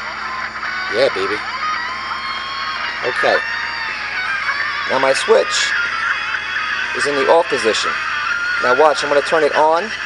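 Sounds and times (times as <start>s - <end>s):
radio music through small speaker: 0.0s - 10.0s.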